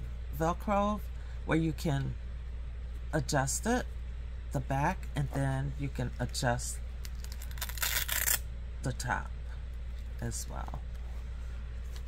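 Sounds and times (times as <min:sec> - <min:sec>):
velcro strap ripping apart: 0:07.0 - 0:08.4.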